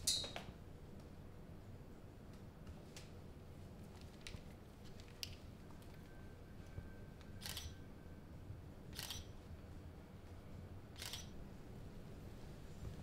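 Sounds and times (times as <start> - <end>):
low room hum: 0.0 - 13.0
camera shutter clicks: 7.4 - 7.7, 9.0 - 9.3, 11.0 - 11.3.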